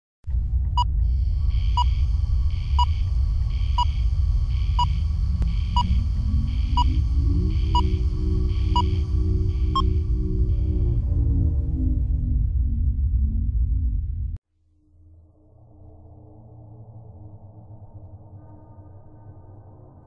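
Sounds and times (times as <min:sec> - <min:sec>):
deep low rumble: 0:00.2 - 0:14.4
rising synth tone: 0:01.0 - 0:14.4.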